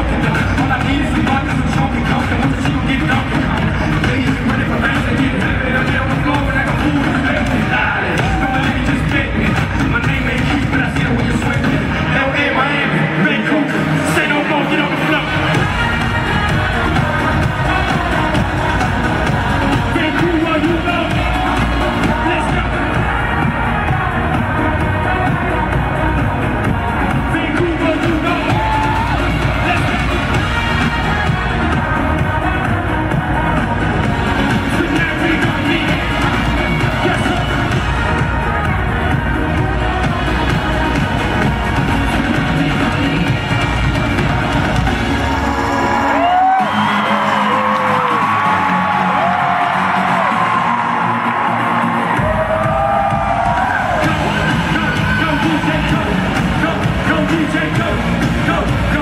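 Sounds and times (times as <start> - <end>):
loud dance-pop music: 0.0 - 59.0.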